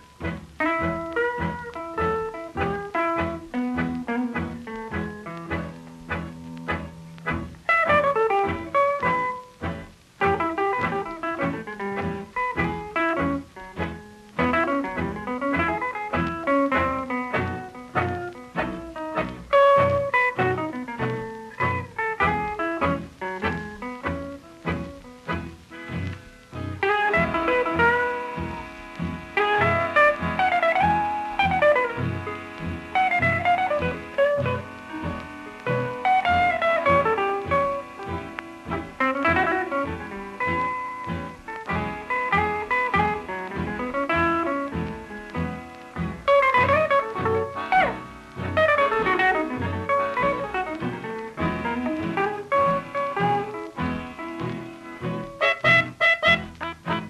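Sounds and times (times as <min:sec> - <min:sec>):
blues guitar picking: 0:00.0 - 0:57.0.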